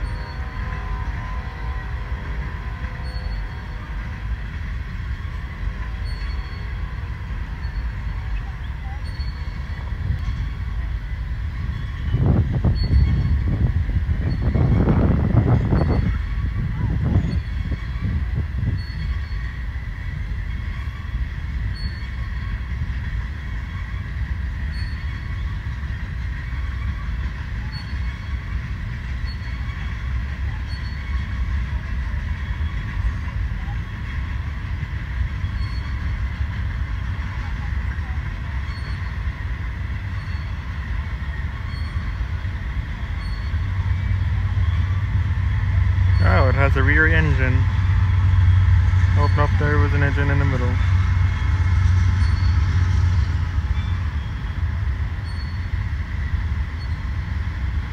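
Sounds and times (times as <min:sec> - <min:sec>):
freight train wheels rumbling on track: 0:00.0 - 0:57.9.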